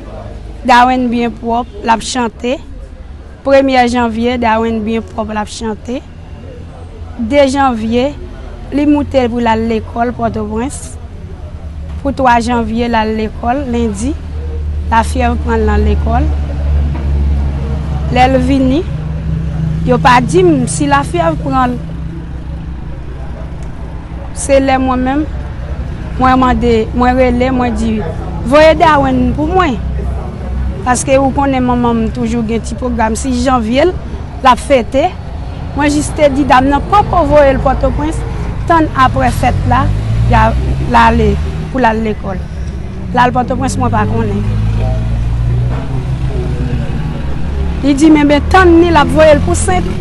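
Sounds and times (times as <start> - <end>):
faint distant voices: 0.0 - 50.0
street traffic rumble: 0.0 - 50.0
woman speaking: 0.6 - 2.7, 3.4 - 6.1, 7.2 - 11.0, 12.0 - 14.2, 14.9 - 16.4, 18.1 - 18.9, 19.8 - 21.9, 24.3 - 25.4, 26.1 - 29.9, 30.8 - 42.4, 43.1 - 44.5, 47.8 - 50.0.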